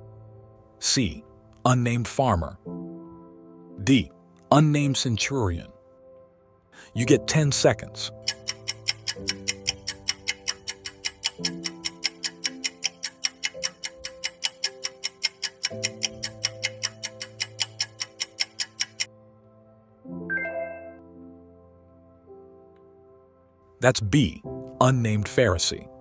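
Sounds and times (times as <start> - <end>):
soft background music chords: 0.0 - 26.0
clock ticking: 7.1 - 19.1.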